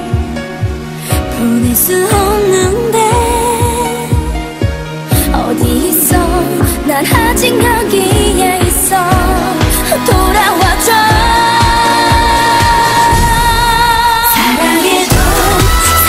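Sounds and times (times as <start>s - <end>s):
sped-up pop song with singing: 0.0s - 16.0s.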